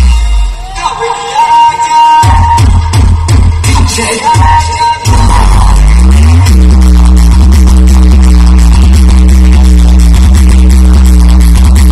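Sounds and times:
hard bass music: 0.0s - 11.9s.

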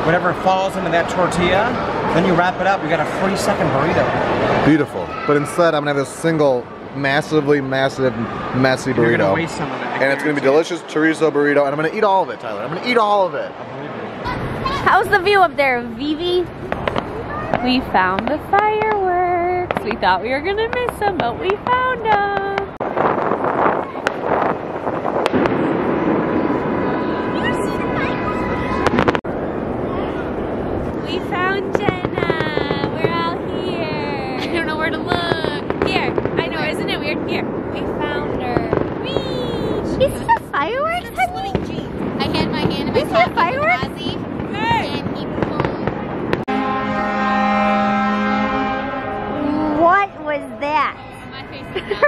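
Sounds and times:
fireworks cracking: 0.0s - 48.4s
rumbling fireworks bursts: 12.6s - 49.4s.

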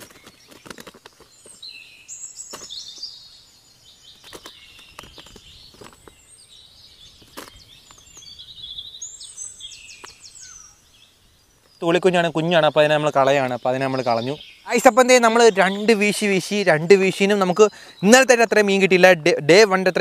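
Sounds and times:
bird singing whistled phrases: 8.1s - 10.9s.

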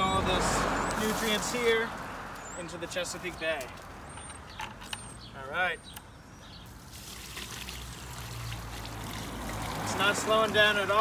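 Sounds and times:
water pouring onto concrete: 6.8s - 11.0s.

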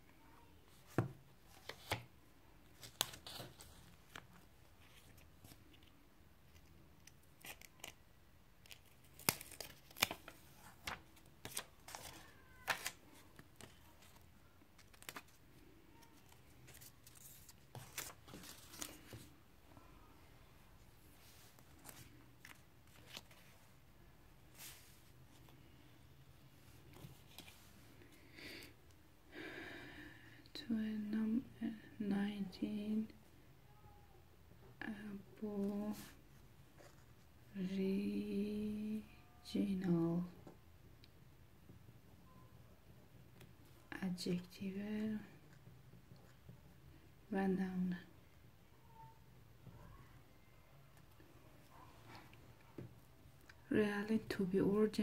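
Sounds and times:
paper rustling and crackling: 2.7s - 5.7s, 8.6s - 15.4s, 16.0s - 19.4s, 21.2s - 23.7s.

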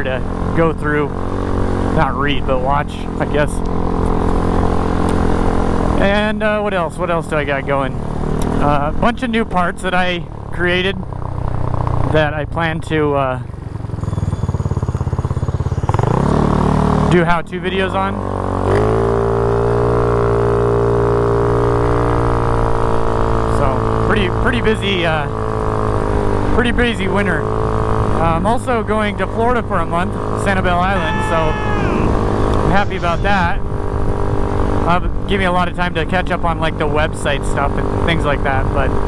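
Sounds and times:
motorbike engine cruising: 0.0s - 39.0s
small motorbike engine pulling away: 13.4s - 17.2s, 18.2s - 24.1s
wind rushing over microphone: 31.0s - 35.3s.

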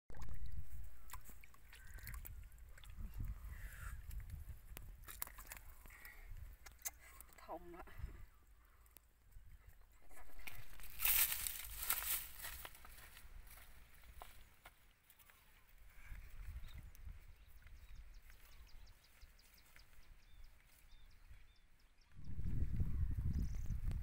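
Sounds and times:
muddy water sloshing: 0.1s - 7.4s, 10.0s - 12.7s
bare feet crunching through stubble: 10.2s - 15.5s.

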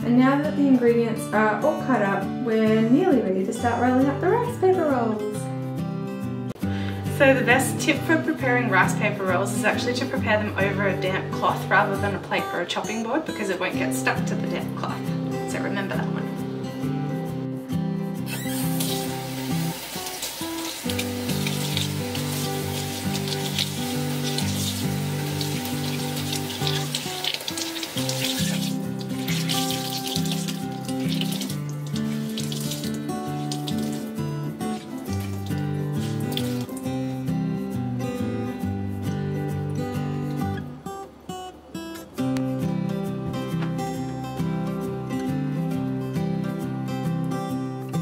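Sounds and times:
background music: 0.0s - 48.0s
cloth being wrung out: 18.3s - 36.9s
tap water running into sink: 18.4s - 36.9s.

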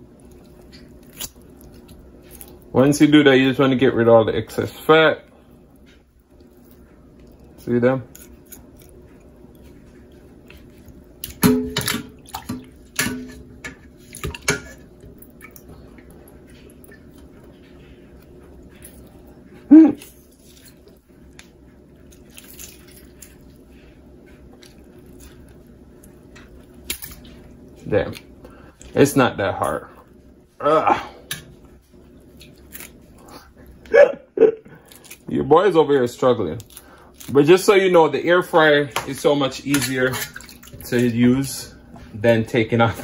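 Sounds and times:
steady low hum: 0.0s - 43.0s
water drips and splashes: 11.2s - 13.2s, 39.1s - 41.1s
wet chicken handling: 34.7s - 43.0s.

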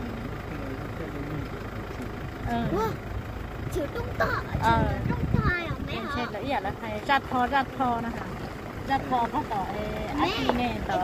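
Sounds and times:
vehicle engine and road noise: 0.0s - 11.0s
woman talking: 4.5s - 11.0s.

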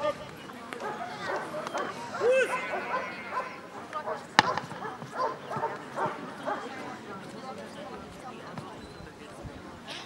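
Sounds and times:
dog barking: 0.8s - 6.7s
sharp crack: 4.4s - 4.8s.

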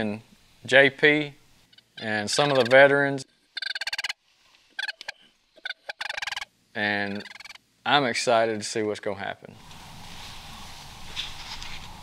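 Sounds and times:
cranes calling: 1.7s - 2.9s, 3.6s - 7.6s.

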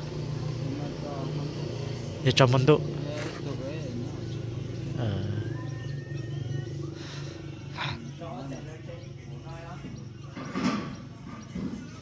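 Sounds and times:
engine idling: 0.0s - 12.0s
men talking: 0.4s - 10.6s.

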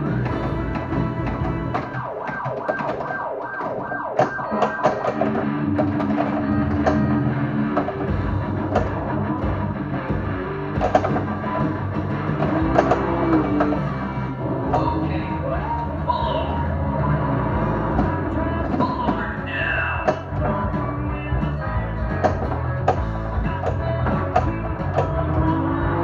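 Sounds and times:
pinball balls and flippers clacking: 0.0s - 26.0s
pinball machine music: 0.0s - 26.0s.

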